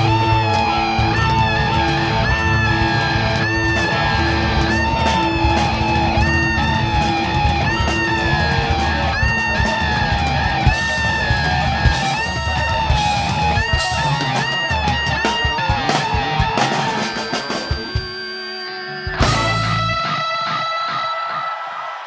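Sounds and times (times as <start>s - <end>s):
bass guitar: 0.0s - 20.8s
electric lead guitar: 0.0s - 21.6s
drums: 0.0s - 22.0s.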